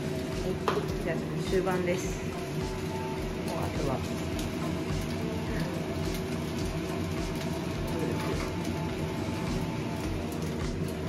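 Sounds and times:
rice sizzling in a frying pan: 0:00.0 - 0:11.0.

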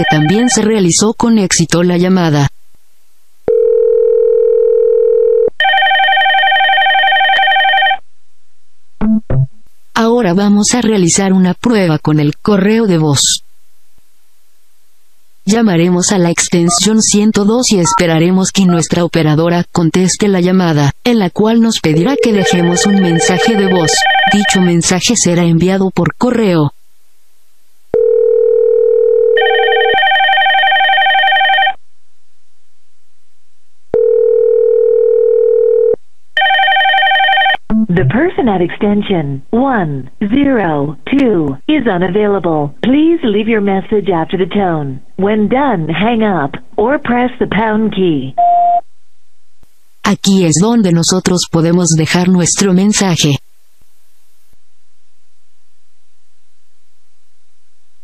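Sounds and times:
phone ringing tone: 0:00.0 - 0:00.7, 0:03.5 - 0:08.0, 0:22.0 - 0:24.8, 0:27.9 - 0:31.8, 0:33.9 - 0:37.6
electronic warbling ringtone: 0:22.2 - 0:24.7.

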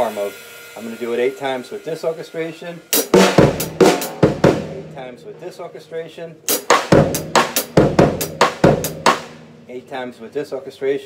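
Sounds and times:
hi-hat strokes: 0:00.0 - 0:05.0, 0:06.5 - 0:09.3
bass drum: 0:03.1 - 0:05.0, 0:06.5 - 0:09.6.

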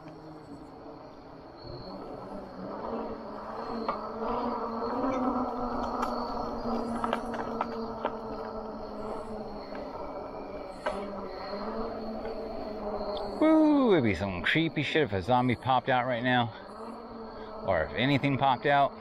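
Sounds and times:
electric bike motor hum: 0:00.0 - 0:14.4.

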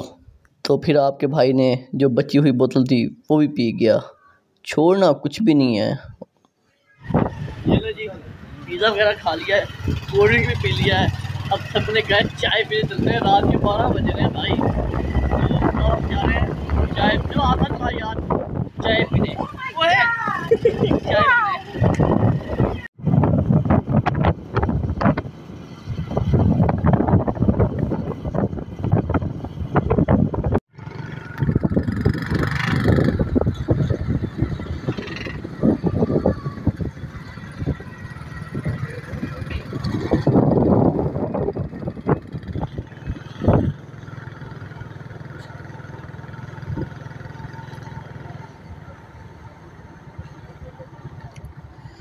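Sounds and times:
wind buffeting microphone: 0:07.1 - 0:08.3, 0:12.0 - 0:47.9
engine hum: 0:07.1 - 0:52.0.

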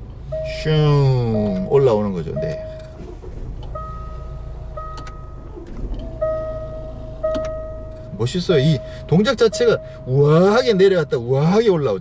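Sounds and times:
diesel engine idling: 0:00.0 - 0:12.0
gear selector dial motor: 0:02.8 - 0:08.2
repeating electronic chime: 0:03.7 - 0:09.0.

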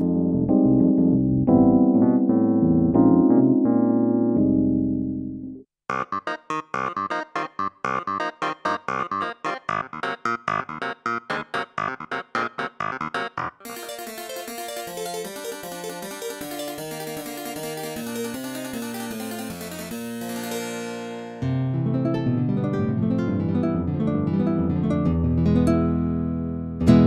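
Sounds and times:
digital piano playing fast passage: 0:00.0 - 0:27.0.

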